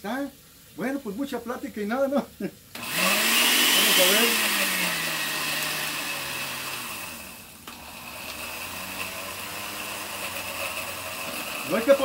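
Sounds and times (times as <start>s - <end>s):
blender click: 2.8s - 12.0s
electric blender running: 2.8s - 12.0s.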